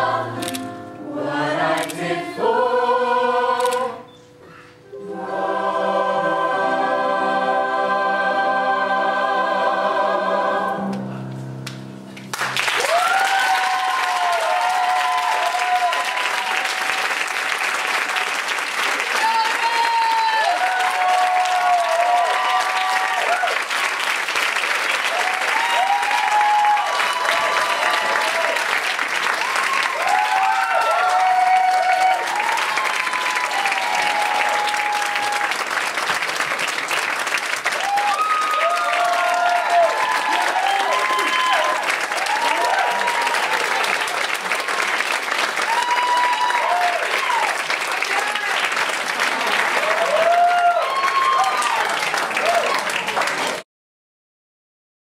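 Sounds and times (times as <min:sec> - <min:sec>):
audience applauding: 0:12.1 - 0:53.6.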